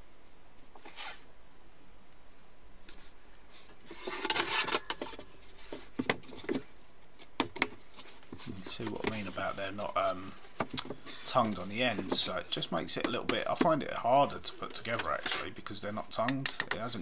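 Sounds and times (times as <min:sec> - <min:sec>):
floor board scraping slide: 0:00.8 - 0:01.3.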